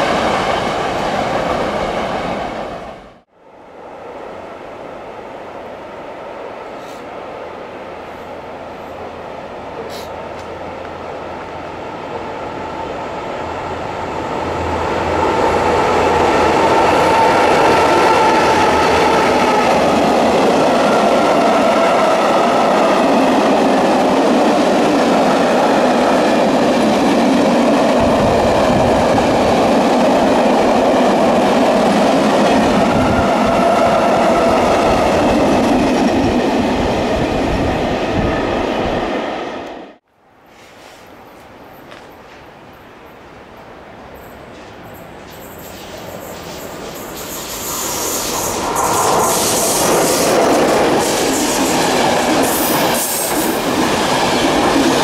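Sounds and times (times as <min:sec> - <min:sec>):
freight train passing: 0:00.0 - 0:55.0.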